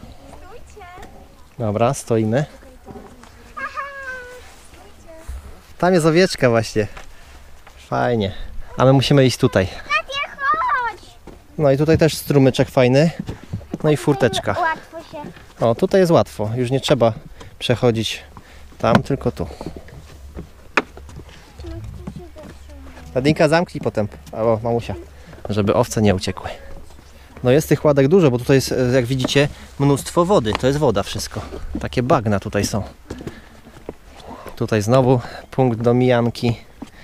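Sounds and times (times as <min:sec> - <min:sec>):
footsteps on wooden boards: 0:09.8 - 0:16.0, 0:16.8 - 0:27.8, 0:28.6 - 0:37.0
faint voices: 0:21.2 - 0:27.8.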